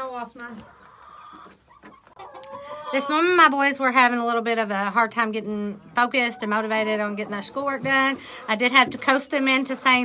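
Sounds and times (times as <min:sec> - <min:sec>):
hens clucking: 0:00.0 - 0:10.0.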